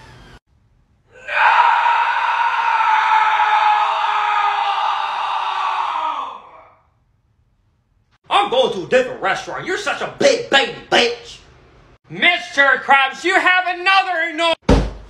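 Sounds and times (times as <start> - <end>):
hoarse scream: 1.1 - 7.0.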